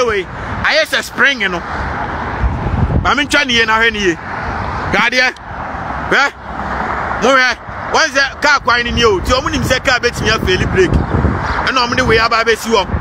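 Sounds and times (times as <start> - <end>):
man's voice outbursts: 0.0 - 1.8, 2.9 - 13.0
low rumble of car and road: 0.0 - 13.0.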